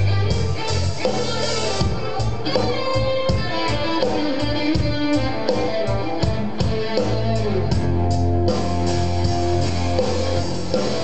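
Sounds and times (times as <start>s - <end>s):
bass and drums beat: 0.0s - 11.0s
electric guitar line: 0.0s - 11.0s.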